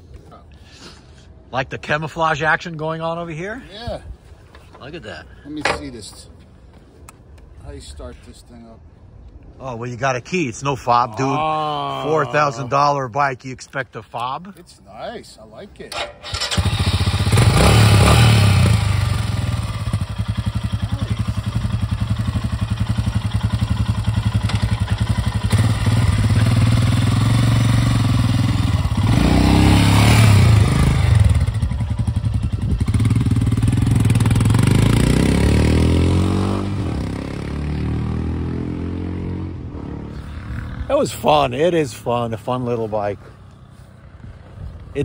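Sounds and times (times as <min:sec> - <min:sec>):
motorcycle engine idling and revving: 0:16.0 - 0:41.6, 0:43.2 - 0:45.0.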